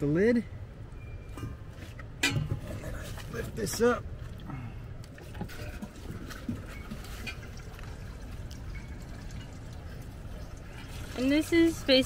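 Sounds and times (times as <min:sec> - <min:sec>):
water pouring from a jug: 0:02.8 - 0:12.0.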